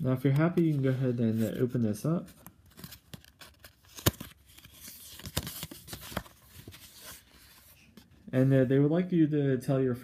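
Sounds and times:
paper card rustling and crackling: 0.2 - 8.2.

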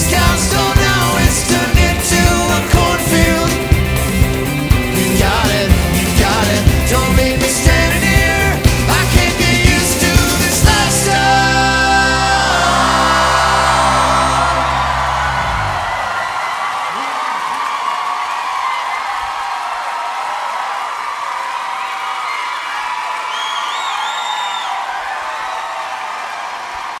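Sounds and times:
audience cheering and clapping: 0.0 - 27.0
band final chord: 10.6 - 16.2
shrill whistle from crowd: 22.1 - 26.0.

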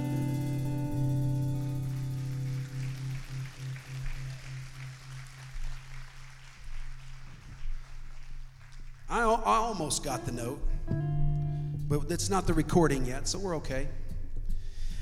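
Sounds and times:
audience applause: 1.5 - 9.9.

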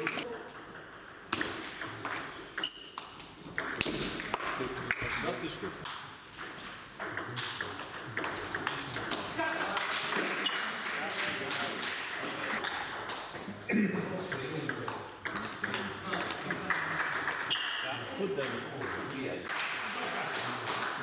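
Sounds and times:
distant ping pong clicks: 5.8 - 9.3, 12.2 - 17.8.

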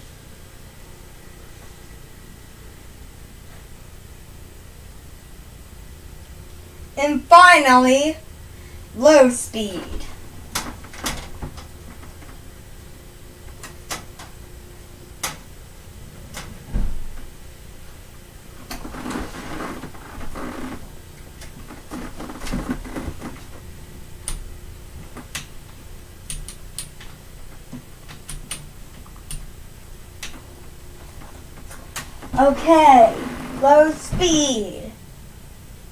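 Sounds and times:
fan motor hum: 0.0 - 35.9
fans blowing air: 0.0 - 35.9.

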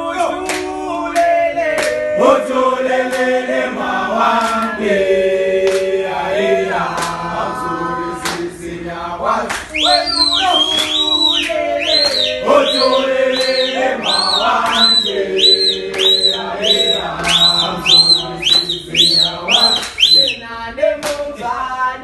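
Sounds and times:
men singing chant: 0.0 - 22.0
person whistling short high notes: 9.7 - 20.4.

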